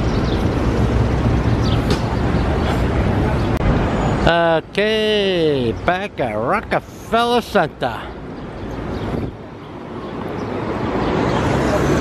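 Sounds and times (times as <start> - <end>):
hubbub of passers-by: 0.0 - 12.0
low traffic rumble: 0.0 - 12.0.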